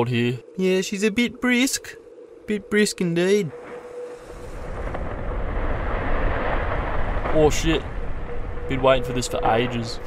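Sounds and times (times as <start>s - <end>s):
deep rumble of ice cliff calving: 3.5s - 10.0s.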